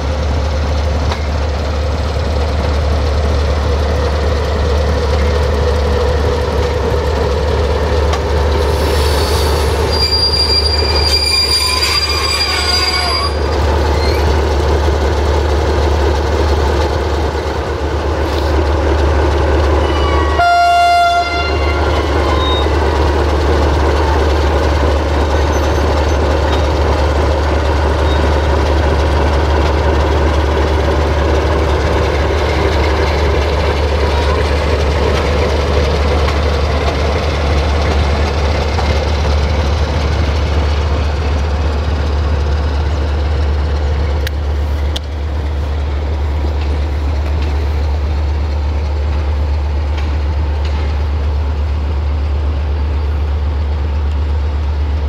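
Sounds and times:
train wheel squeal: 8.7 - 14.4, 19.8 - 23.0, 25.3 - 26.3, 28.0 - 28.4
train horn blast: 19.8 - 22.7.

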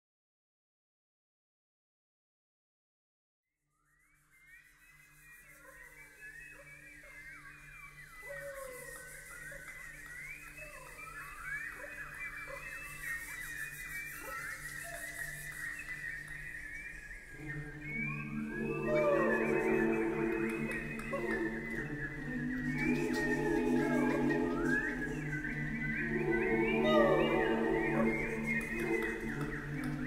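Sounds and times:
whistled bird-like chirps: 3.7 - 30.0
sustained orchestral chords: 17.4 - 30.0.

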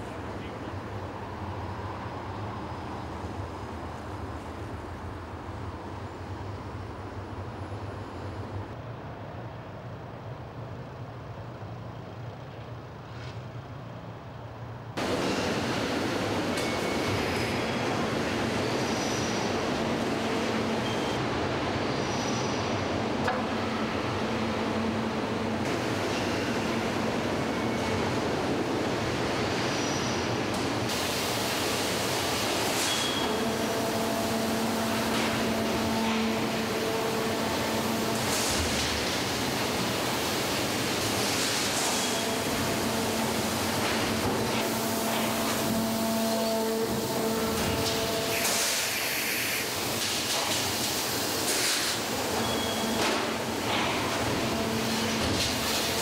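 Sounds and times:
machinery hiss: 29.2 - 56.0.

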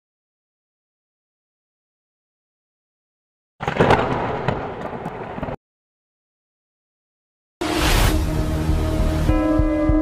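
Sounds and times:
crackling rumbling noise: 3.6 - 5.6.

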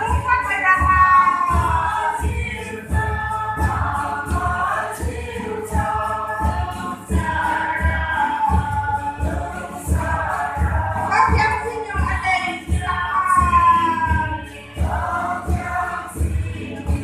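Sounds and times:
group of people singing: 0.0 - 17.0
low thumping beat: 0.0 - 17.0.

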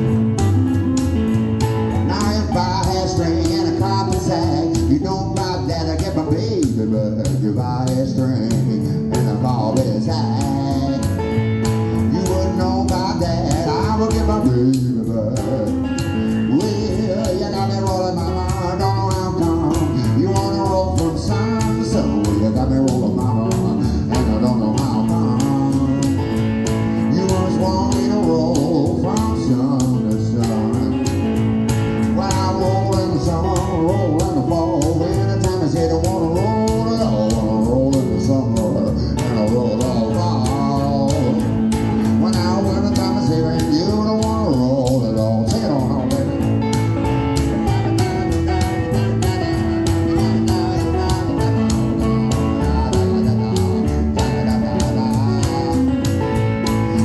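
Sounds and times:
electric guitar playing blues: 0.0 - 57.0
man singing: 0.0 - 57.0
plucked double bass: 0.0 - 57.0.

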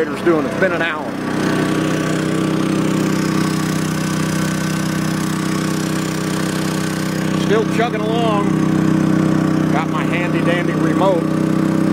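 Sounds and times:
generator engine chugging: 0.0 - 11.9.

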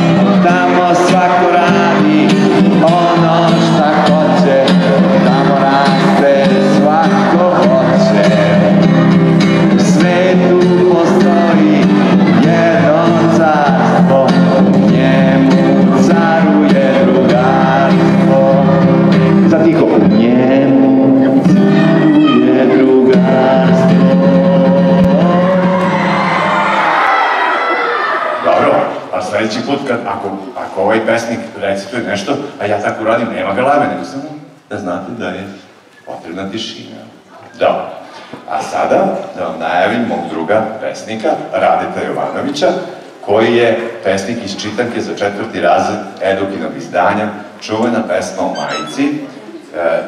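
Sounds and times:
man singing: 0.0 - 26.2
acoustic guitar: 0.0 - 26.8, 28.5 - 50.0
children clapping and cheering: 25.6 - 28.5.

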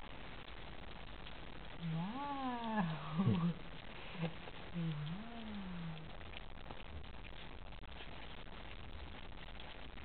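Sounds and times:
puppy growling: 1.8 - 6.2.

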